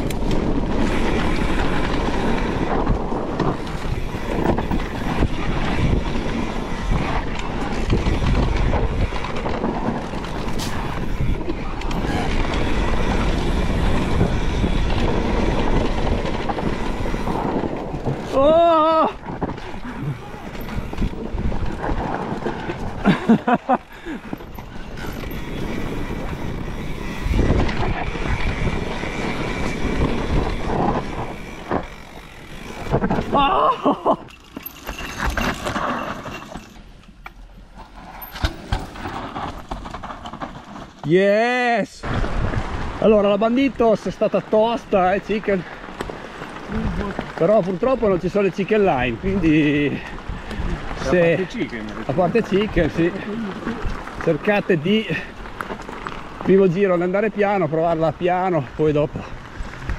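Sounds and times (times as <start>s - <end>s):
wind buffeting microphone: 0.0s - 34.3s, 42.0s - 43.8s, 44.4s - 57.4s
bike rattling: 0.0s - 59.9s
tyre rumble on dirt: 37.5s - 41.2s, 42.0s - 43.9s.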